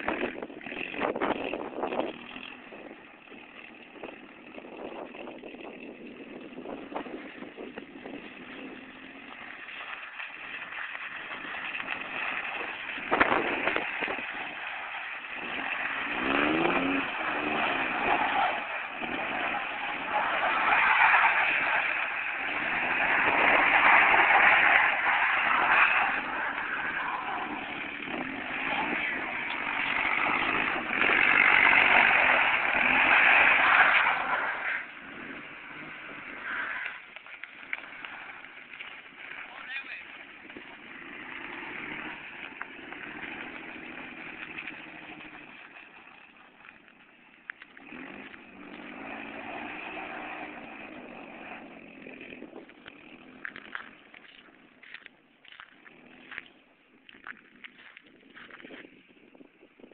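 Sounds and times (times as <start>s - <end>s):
suv engine revving: 0.0s - 46.7s, 47.5s - 56.6s.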